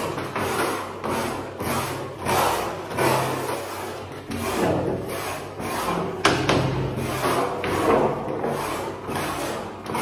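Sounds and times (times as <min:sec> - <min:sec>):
trowel scraping wet mortar: 0:00.0 - 0:10.0.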